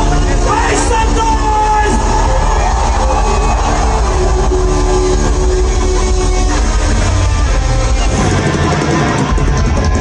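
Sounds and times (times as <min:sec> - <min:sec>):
live band music over loudspeakers: 0:00.0 - 0:10.0.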